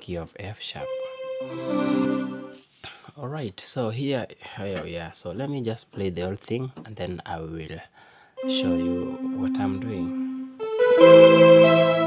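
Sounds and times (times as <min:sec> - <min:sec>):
keyboard strings chord: 0:00.8 - 0:02.6, 0:08.4 - 0:12.0.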